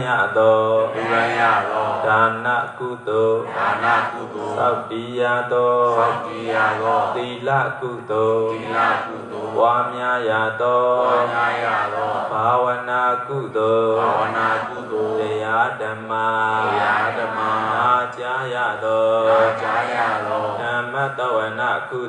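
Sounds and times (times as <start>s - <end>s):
man chanting over loudspeaker: 0.0s - 22.0s.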